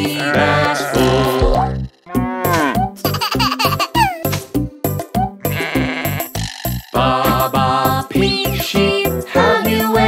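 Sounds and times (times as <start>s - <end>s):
sheep bleating: 0.0s - 1.5s, 5.4s - 6.4s
children's song backing track: 0.0s - 5.7s, 6.7s - 10.0s.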